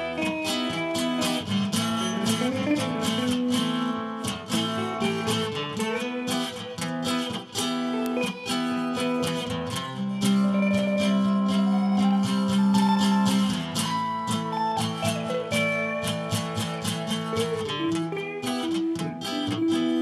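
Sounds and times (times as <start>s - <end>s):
acoustic guitar strumming: 0.0s - 20.0s
electric guitar lead with bent notes: 0.0s - 20.0s.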